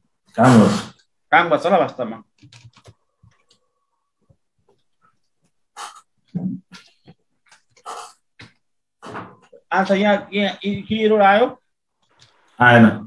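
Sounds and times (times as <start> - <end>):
person speaking: 9.6 - 11.6.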